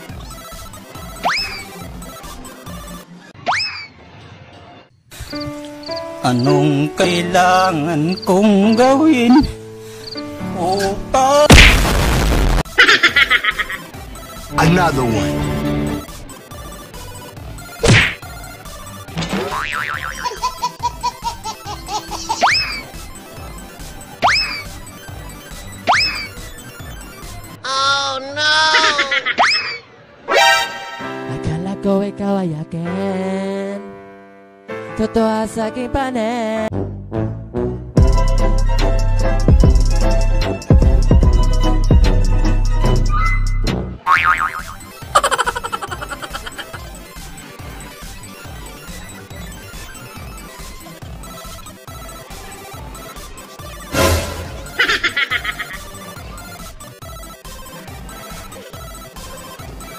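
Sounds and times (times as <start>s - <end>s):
faint background music: 0.0s - 11.7s, 13.1s - 34.1s
cartoon boing: 19.4s - 20.3s, 44.1s - 44.8s
wobbling boing: 44.1s - 44.8s.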